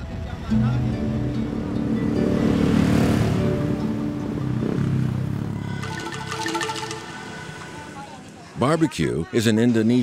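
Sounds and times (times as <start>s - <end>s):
background music with held notes: 0.0s - 7.9s
motorcycle passing: 1.0s - 8.0s.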